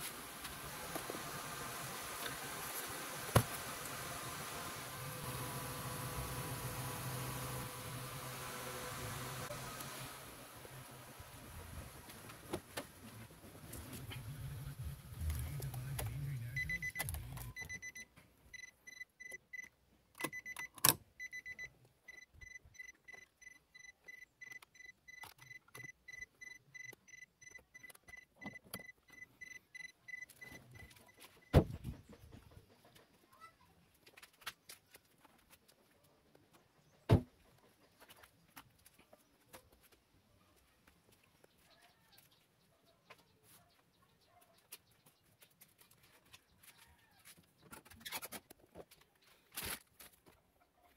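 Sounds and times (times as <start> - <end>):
car warning chime beeping: 16.5 - 31.2.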